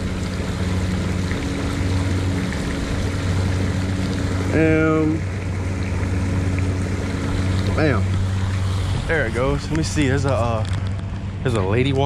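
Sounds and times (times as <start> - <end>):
fountain water splashing: 0.0 - 12.0
low hum: 0.0 - 12.0.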